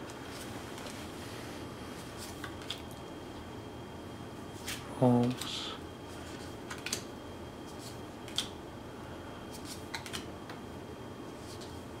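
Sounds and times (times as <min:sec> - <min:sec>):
light card flicks and clicks: 0:06.7 - 0:07.1, 0:08.2 - 0:08.6, 0:09.6 - 0:10.6.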